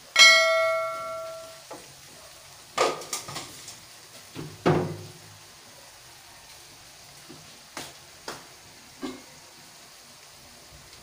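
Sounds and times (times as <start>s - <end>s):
notification bell chime: 0.2s - 1.6s.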